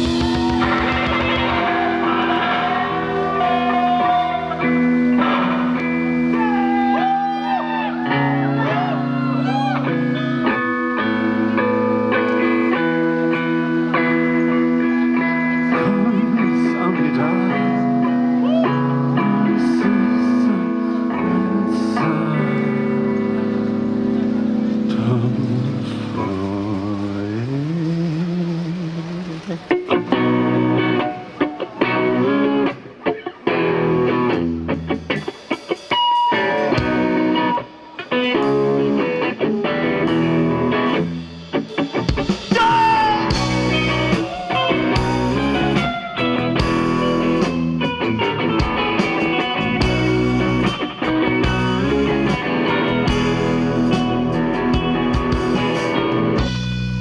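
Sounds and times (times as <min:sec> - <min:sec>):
distorted electric guitar chords: 0:00.0 - 0:57.0
lead guitar bending notes: 0:00.0 - 0:57.0.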